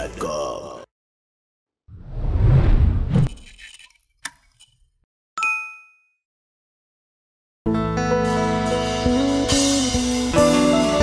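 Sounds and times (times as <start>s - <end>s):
notification bell ding: 5.4s - 6.1s.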